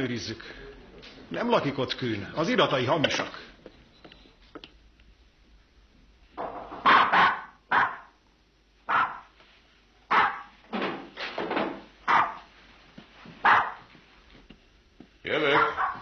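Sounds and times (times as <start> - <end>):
dog barking: 6.8 - 8.2, 8.9 - 9.3, 10.1 - 10.6, 12.1 - 12.5, 13.4 - 13.9, 15.5 - 16.0.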